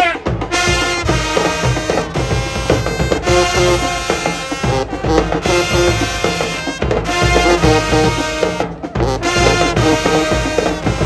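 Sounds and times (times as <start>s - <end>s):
brass instruments: 0.0s - 11.0s
drumline: 0.0s - 11.0s.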